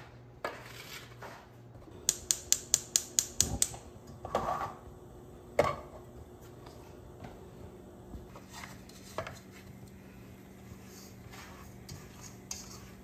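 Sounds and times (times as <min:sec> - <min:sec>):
gas hob igniter ticking: 0:02.0 - 0:03.8.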